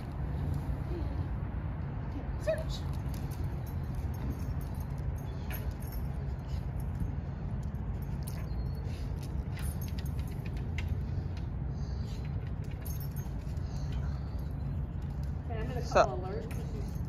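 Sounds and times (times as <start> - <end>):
steady low rumble: 0.0 - 17.0
collar tags jingling: 2.1 - 17.0.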